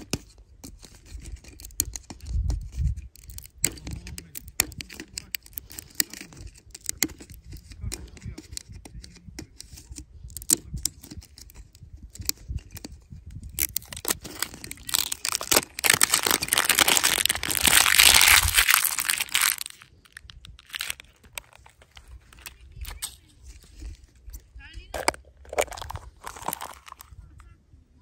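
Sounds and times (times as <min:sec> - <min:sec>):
light plastic clicks and rustles: 0:00.0 - 0:27.5
plastic film crinkling: 0:02.7 - 0:03.7, 0:13.4 - 0:24.2, 0:24.9 - 0:27.2.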